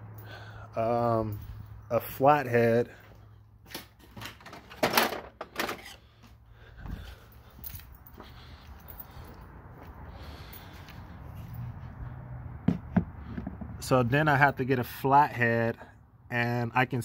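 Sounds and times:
tools clattering: 3.7s - 6.1s
metal drawer opening: 4.1s - 6.0s.

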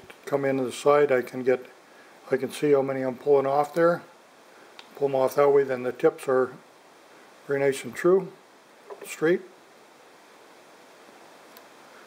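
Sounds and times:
room tone hiss: 0.0s - 12.0s.

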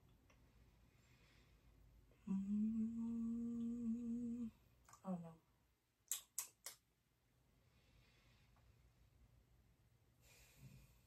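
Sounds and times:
person humming: 2.2s - 5.4s.

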